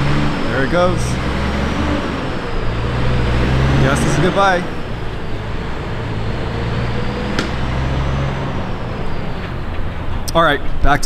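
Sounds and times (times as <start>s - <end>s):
truck engine humming: 0.0s - 10.8s
sharp click: 7.4s - 7.6s.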